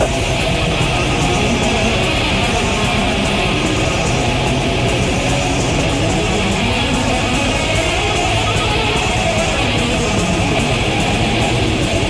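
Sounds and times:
metal band playing: 0.0s - 12.0s.

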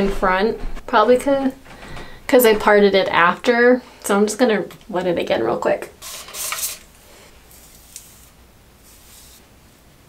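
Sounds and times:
spray bottle misting: 7.5s - 9.5s.

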